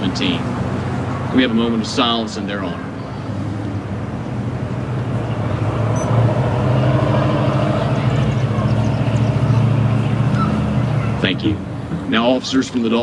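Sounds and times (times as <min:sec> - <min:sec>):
road traffic passing: 0:00.0 - 0:13.0.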